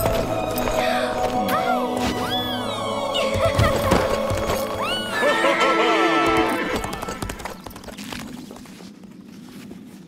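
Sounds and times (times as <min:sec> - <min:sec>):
film score music: 0:00.0 - 0:07.8.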